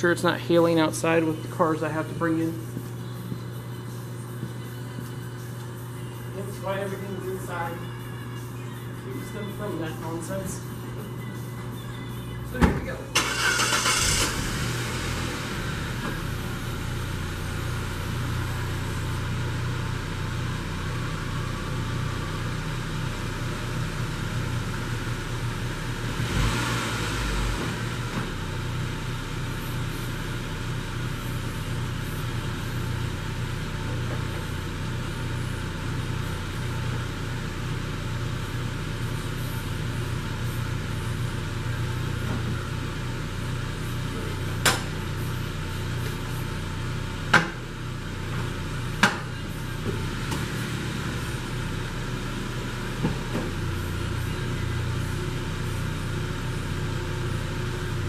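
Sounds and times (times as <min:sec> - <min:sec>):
car engine idling: 0:00.0 - 0:58.0
convertible top motor: 0:13.1 - 0:15.0.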